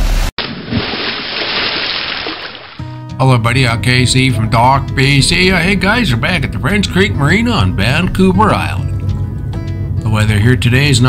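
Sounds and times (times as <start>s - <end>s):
water splashing: 0.0s - 2.9s
acoustic guitar music: 2.8s - 11.0s.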